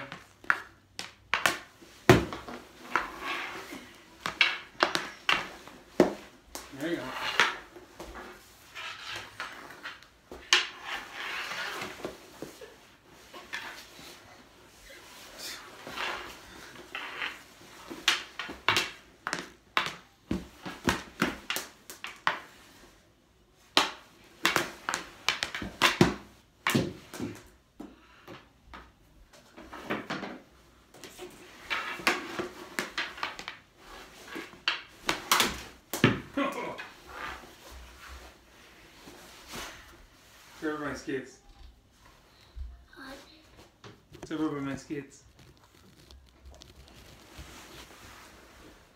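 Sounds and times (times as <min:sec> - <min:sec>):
hockey balls striking pads and floor: 0:00.0 - 0:14.2, 0:15.2 - 0:22.9, 0:23.6 - 0:40.1.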